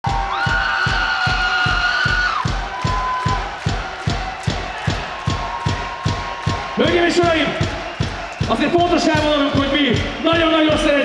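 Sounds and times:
fast kick drum beat: 0.0s - 11.0s.

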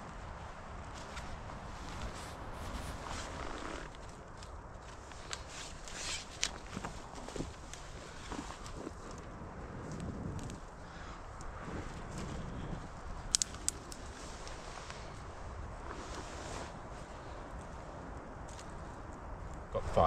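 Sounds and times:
campfire burning: 0.0s - 20.0s
sharp fire crackles: 0.0s - 20.0s
soft steady hiss: 0.0s - 20.0s.

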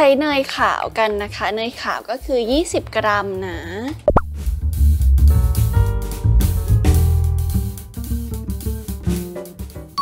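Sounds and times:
woman speaking: 0.0s - 4.0s
upbeat music with drums: 0.1s - 10.0s
rising plop sound effect: 4.1s - 4.3s.

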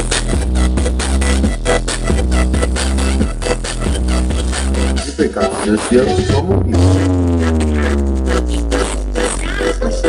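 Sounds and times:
dance remix music: 0.0s - 10.0s
heavy steady bass: 0.0s - 10.0s
falling synth tone: 5.8s - 8.9s.

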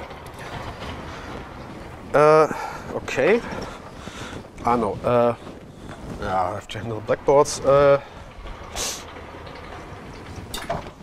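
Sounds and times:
blackboard panels rolling on tracks: 0.0s - 11.0s.

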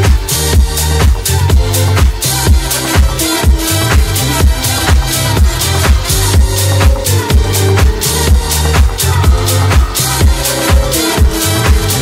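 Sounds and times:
bass line: 0.0s - 12.0s
electronic dance music: 0.0s - 12.0s
steady kick drum: 0.0s - 12.0s.

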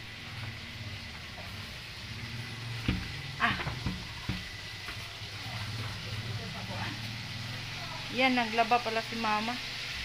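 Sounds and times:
low motor hum: 0.0s - 9.9s.

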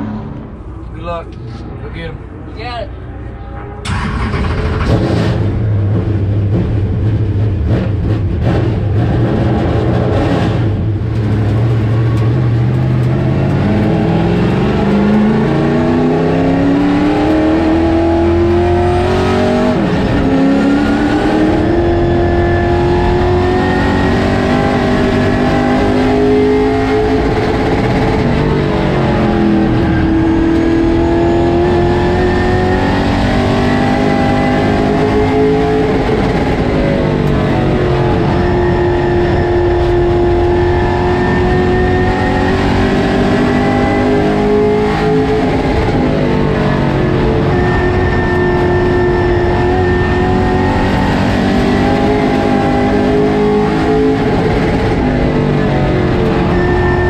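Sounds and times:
race car engine revving: 0.0s - 57.0s.

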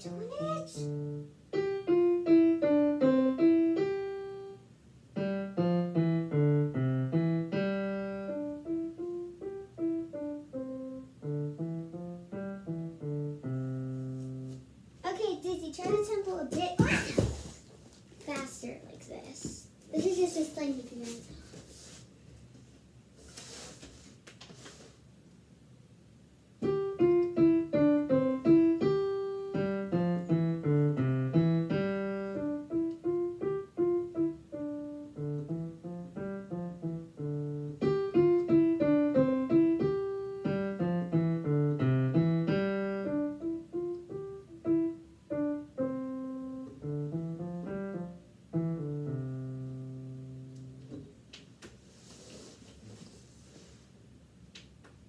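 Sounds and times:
digital piano melody: 0.0s - 14.6s, 26.6s - 50.9s.

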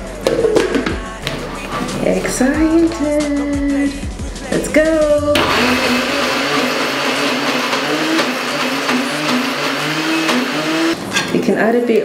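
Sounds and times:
electric blender running: 5.4s - 11.0s.

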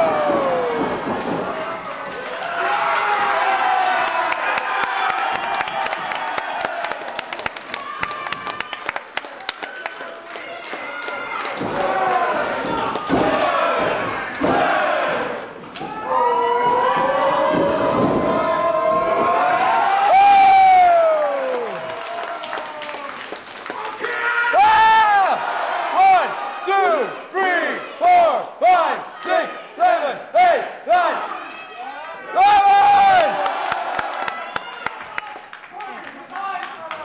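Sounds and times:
crowd shouting and cheering: 0.0s - 37.0s
rhythmic crowd shouts: 10.6s - 23.1s, 23.8s - 35.2s.

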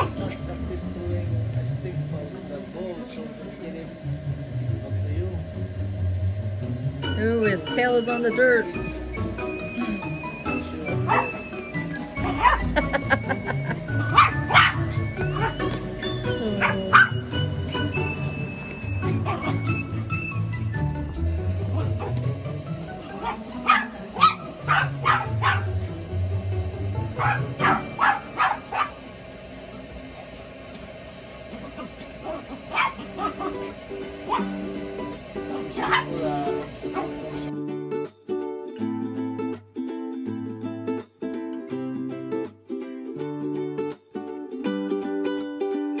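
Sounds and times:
background music: 5.8s - 28.1s
puppy barking and yipping: 11.1s - 11.5s, 12.2s - 13.0s, 14.0s - 15.8s, 16.6s - 17.4s, 19.0s - 20.2s, 21.8s - 22.2s, 23.0s - 25.8s, 27.2s - 29.0s, 31.5s - 34.5s, 35.8s - 36.2s.

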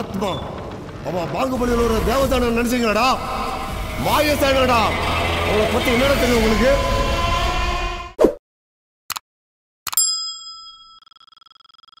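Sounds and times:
bright bell ding: 10.0s - 11.2s.

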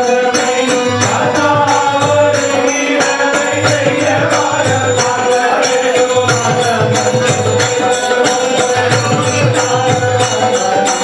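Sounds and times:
hand cymbals struck: 0.0s - 11.0s
men singing devotional song: 0.0s - 11.0s.

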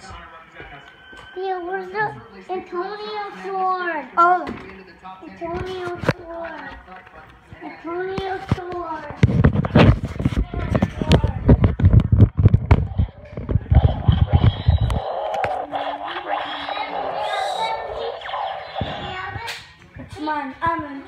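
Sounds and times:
muffled voices: 0.0s - 21.0s.

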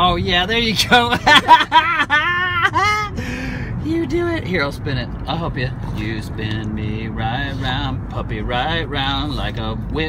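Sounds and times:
man laughing: 0.8s - 3.5s.

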